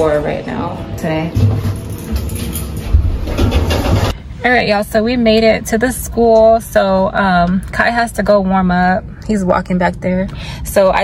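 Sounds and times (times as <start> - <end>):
elevator low rumble: 0.0 - 11.0.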